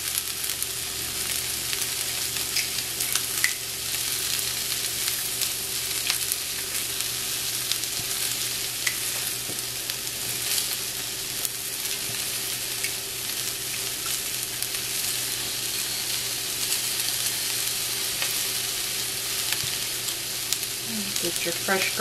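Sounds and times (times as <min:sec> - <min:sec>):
vegetables sizzling in oil: 0:00.0 - 0:22.0.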